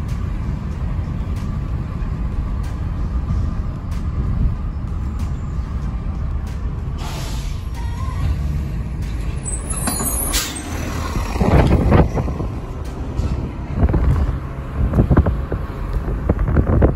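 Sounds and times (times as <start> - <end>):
vehicle rumble inside car: 0.0 - 16.9
air brake hiss: 7.0 - 8.0
wind buffeting microphone: 10.7 - 16.9.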